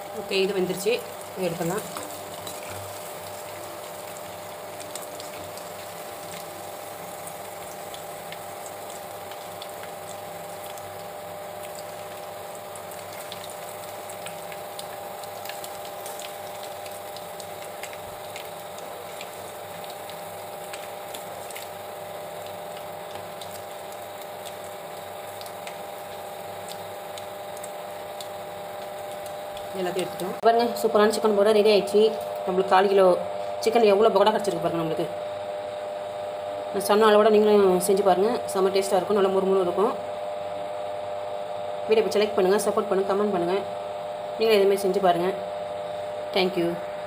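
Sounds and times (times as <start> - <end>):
food deep-frying in oil: 0.0 - 47.0.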